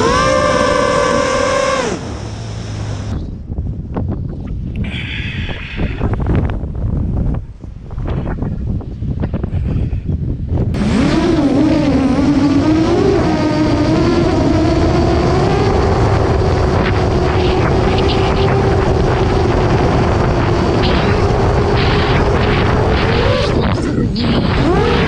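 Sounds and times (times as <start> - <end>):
drone motors whining: 0.0 - 3.3, 10.8 - 25.0
wind buffeting microphone: 0.0 - 25.0.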